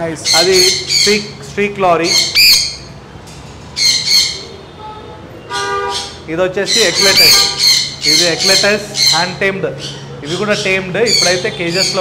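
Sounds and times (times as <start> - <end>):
parrots squawking: 0.1 - 3.0, 3.7 - 4.6, 5.4 - 12.0.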